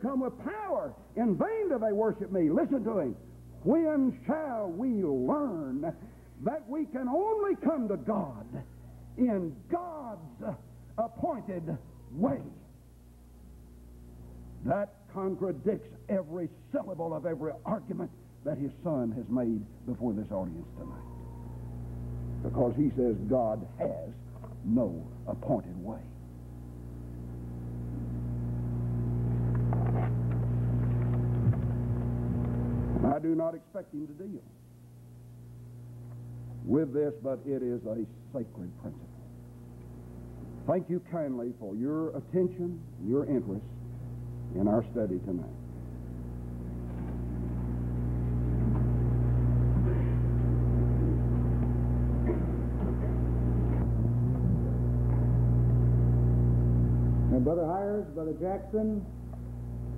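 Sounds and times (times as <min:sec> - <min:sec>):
low electrical hum: 0:00.0 - 0:59.9.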